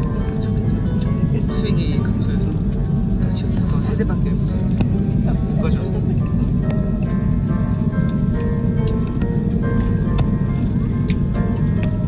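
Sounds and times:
aircraft cabin rumble: 0.0 - 12.0
music: 0.0 - 12.0.

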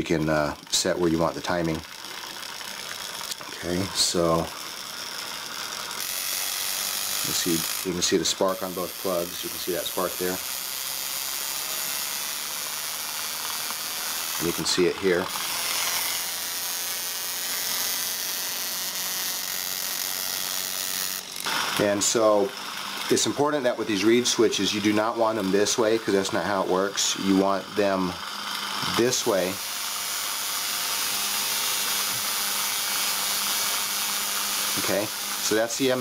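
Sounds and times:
spark plug crackling buzz: 0.0 - 36.0.

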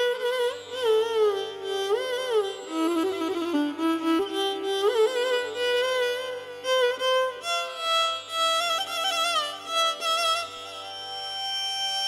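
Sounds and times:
violin playing slow melody: 0.0 - 12.0.

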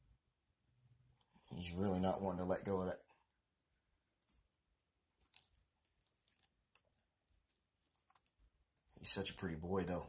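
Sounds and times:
tongs prodding webbing clicks: 4.1 - 9.4.

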